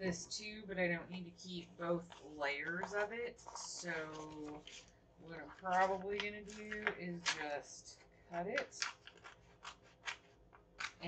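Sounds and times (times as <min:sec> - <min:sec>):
stiff paper crisp sounds: 0:02.1 - 0:07.6, 0:08.6 - 0:11.0.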